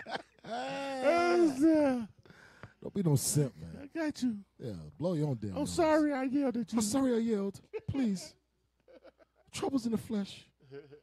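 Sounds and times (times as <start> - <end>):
man mock wailing: 0.4 - 2.1.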